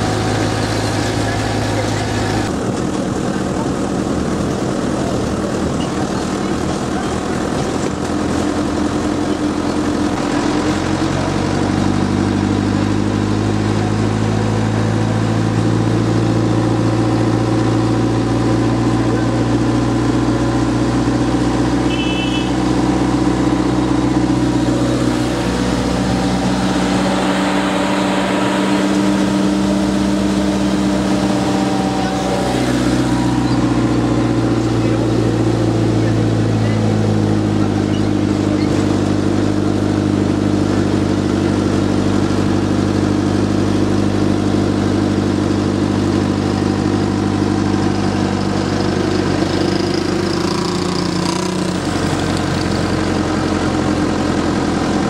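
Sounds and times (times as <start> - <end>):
truck engine running: 0.0 - 55.0.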